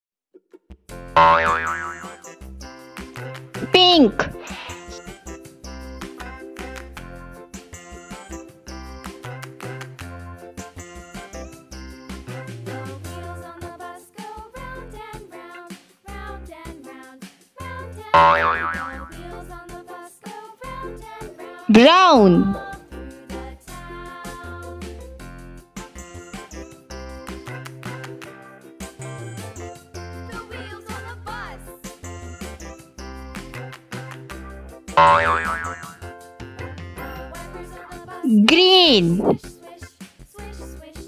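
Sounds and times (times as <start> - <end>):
children's song backing track: 0.9 - 41.0
cartoon boing: 1.2 - 2.2, 18.2 - 19.2, 21.7 - 22.6, 35.0 - 36.0, 38.4 - 39.4.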